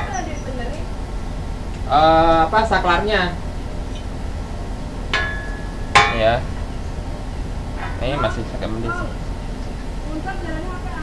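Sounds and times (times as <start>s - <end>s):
knock on metal rack ringing: 5.1s - 6.5s.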